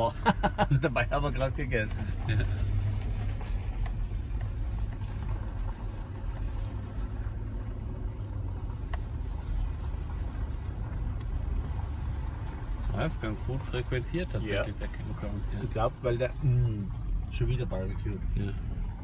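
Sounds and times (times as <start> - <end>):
tyres on gravel road: 0.0 - 19.0
vehicle engine rumble: 0.0 - 19.0.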